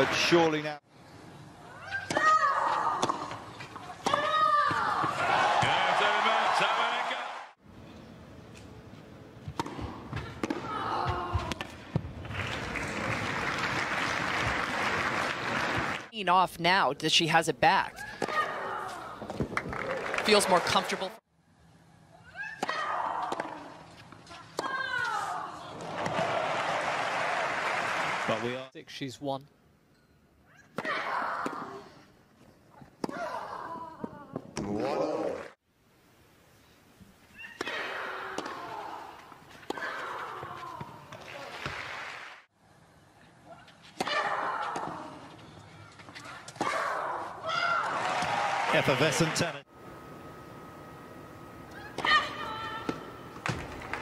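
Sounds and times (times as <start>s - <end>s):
crowd applauding and cheering: 5.2s - 7.6s, 12.3s - 16.1s, 19.6s - 21.0s, 25.8s - 28.6s, 47.8s - 49.5s
racket hitting tennis ball: 9.4s - 12.1s.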